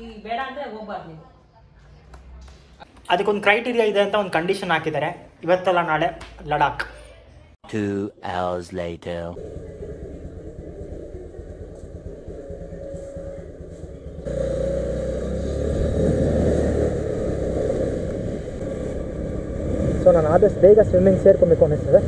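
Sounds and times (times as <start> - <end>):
scooter engine running: 9.4 - 20.0.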